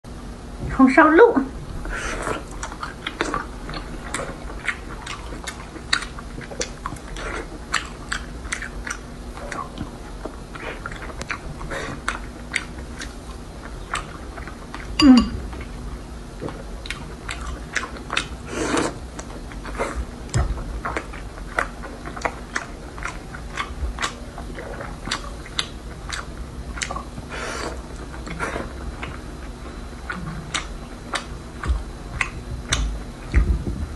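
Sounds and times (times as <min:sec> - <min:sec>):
chewing food: 0:02.1 - 0:33.5.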